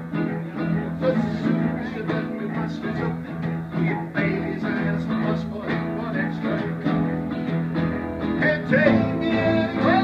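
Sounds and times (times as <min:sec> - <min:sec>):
guitar: 0:00.0 - 0:10.0.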